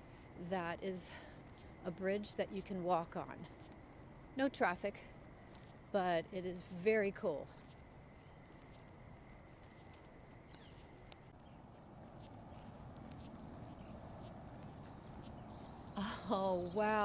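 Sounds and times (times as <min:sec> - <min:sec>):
footsteps on concrete: 0:07.2 - 0:16.0.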